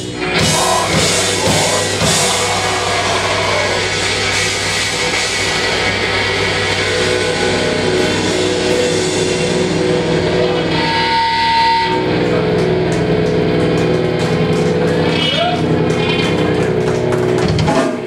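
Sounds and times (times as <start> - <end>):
metal band guitar drone: 0.0 - 18.0.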